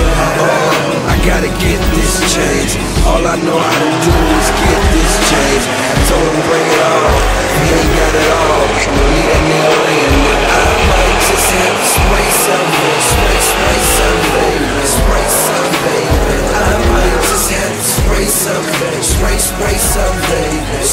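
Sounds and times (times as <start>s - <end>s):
cars revving and accelerating: 0.0s - 20.9s
hip-hop beat with heavy bass: 0.0s - 20.9s.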